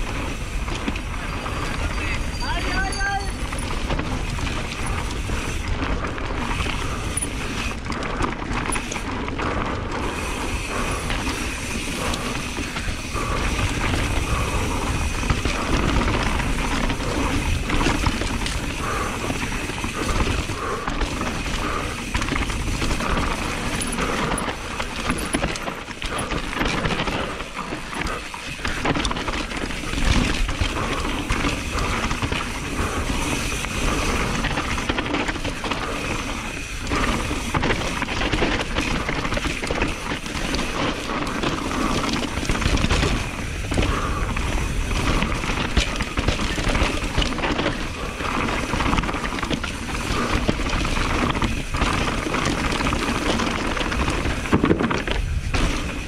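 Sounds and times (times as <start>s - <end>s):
bike chain rattling: 0.0s - 56.0s
tyre rumble over dirt: 0.0s - 56.0s.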